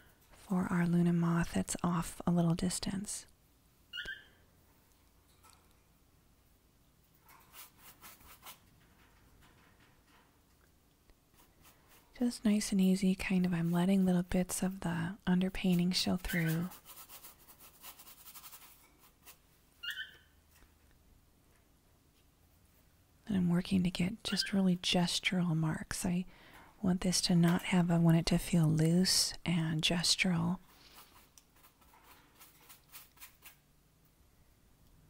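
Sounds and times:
brush stroking paint on canvas: 7.3 - 8.7, 11.3 - 19.6, 30.2 - 33.7
short high squeak: 19.8 - 20.3.

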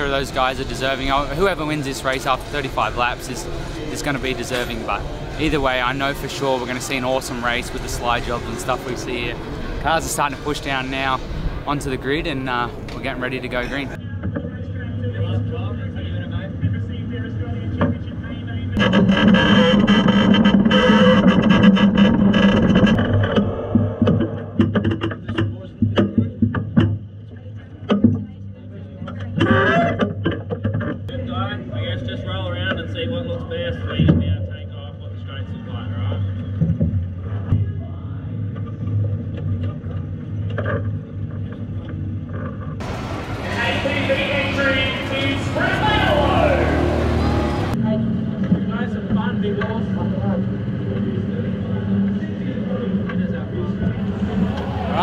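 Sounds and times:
vehicle engine drone: 0.0 - 24.8, 31.7 - 55.0
announcer over loudspeakers: 43.3 - 47.8.

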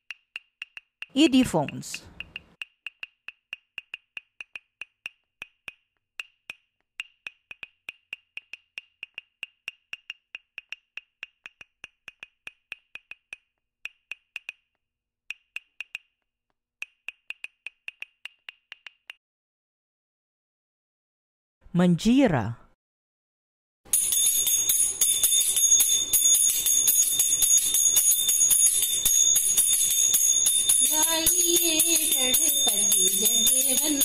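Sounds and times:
wood-block-like clicks: 0.0 - 19.2.

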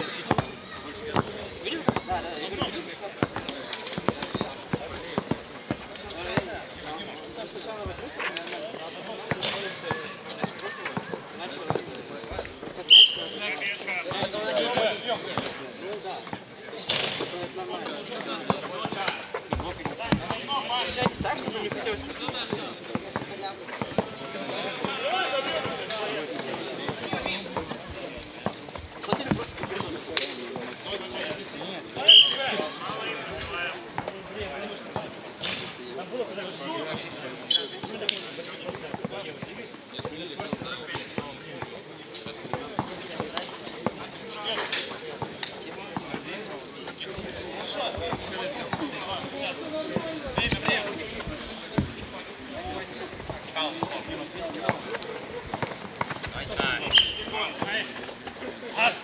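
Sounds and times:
basketball bouncing on a court: 0.2 - 0.5, 1.1 - 5.8.

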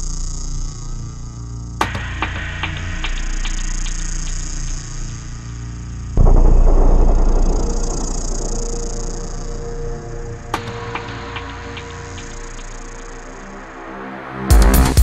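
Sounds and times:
low synth drone: 4.7 - 14.8
loud low hit: 6.2 - 13.8.

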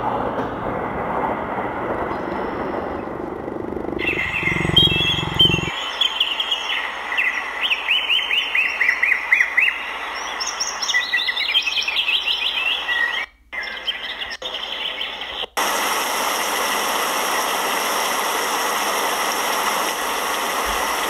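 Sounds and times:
cheetah purring: 3.0 - 5.8
songbirds chirping: 4.0 - 15.6.

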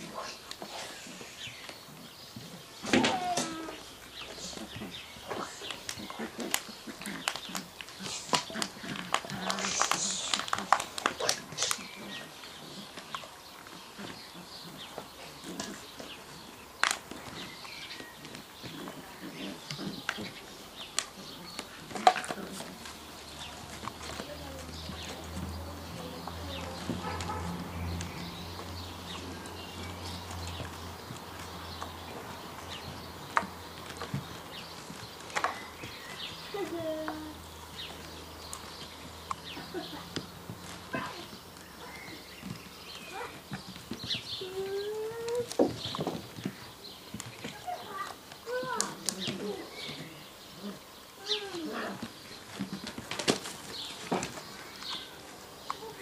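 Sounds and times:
paws tapping on wooden boxes: 1.6 - 56.0.

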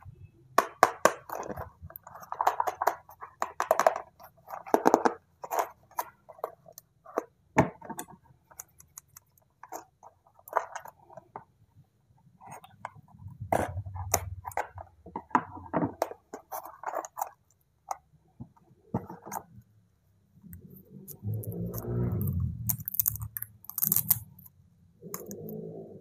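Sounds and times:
packaging clicking and scraping: 15.6 - 17.6.

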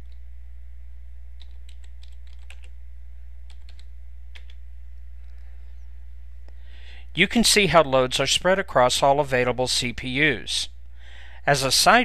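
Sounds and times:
steady low hum: 0.0 - 12.0
computer keyboard typing: 1.4 - 2.8, 3.5 - 4.6.

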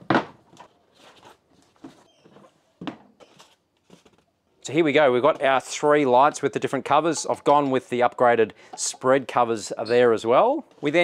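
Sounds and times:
cardboard box thunk: 0.0 - 0.4
soft handling sounds: 0.5 - 6.4.

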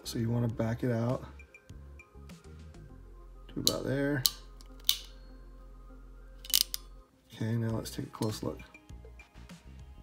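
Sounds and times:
crimping tool ratchet clicks: 3.7 - 5.1, 6.4 - 6.8.

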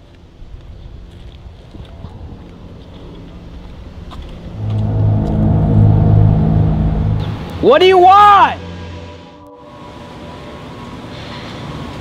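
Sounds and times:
deep steady drone: 4.0 - 12.0
low rumbling noise: 4.2 - 11.0.

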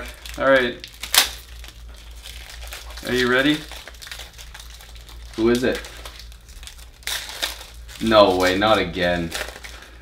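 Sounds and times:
cards and foil wrappers rustling: 0.0 - 10.0.

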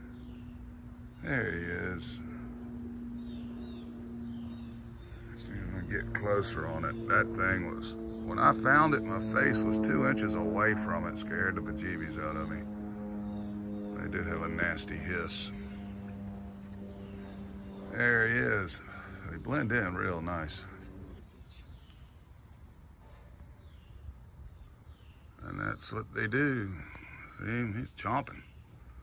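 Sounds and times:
low hum: 0.0 - 29.0
faint bird chirps: 13.2 - 29.0.

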